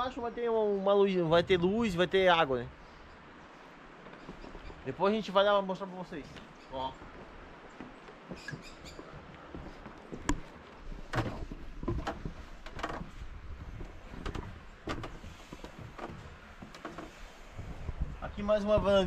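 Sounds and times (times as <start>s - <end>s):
faint outdoor background: 0.0s - 19.0s
footsteps on wooden boards: 3.9s - 4.9s, 6.2s - 19.0s.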